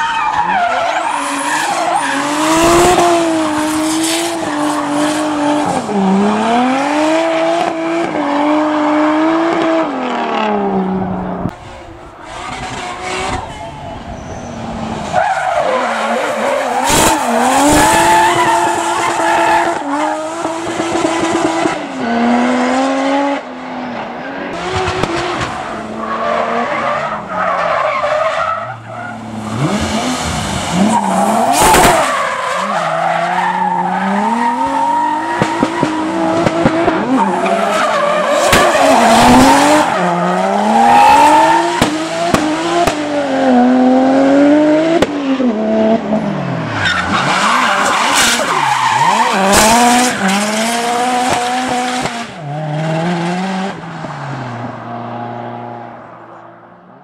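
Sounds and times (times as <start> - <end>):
car engine revving: 0.5 - 56.2
sharp crack: 38.5 - 38.8
tyres squealing: 46.8 - 50.4.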